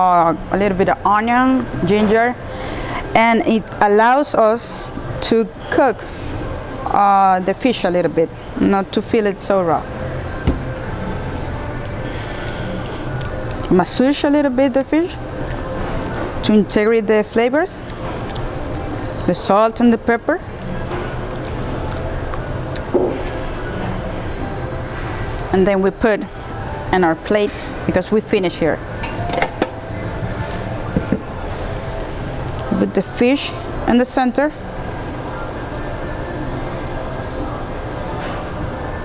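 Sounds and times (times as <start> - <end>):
kitchen room hum and hiss: 0.0 - 39.0.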